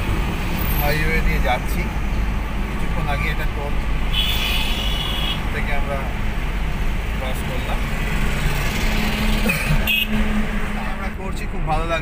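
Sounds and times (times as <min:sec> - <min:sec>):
road and engine noise in car: 0:00.0 - 0:12.0.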